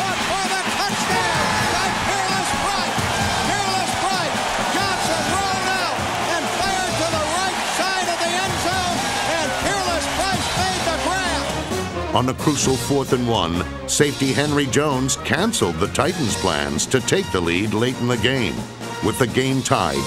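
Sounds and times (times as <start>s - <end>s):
music playing: 0.0s - 20.0s
stadium crowd cheering and yelling: 0.0s - 20.0s.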